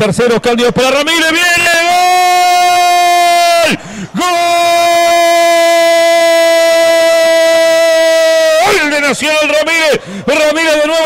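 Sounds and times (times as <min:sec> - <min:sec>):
man speaking fast: 0:00.0 - 0:05.8, 0:08.6 - 0:11.0
man shouting long goal cry: 0:00.8 - 0:11.0.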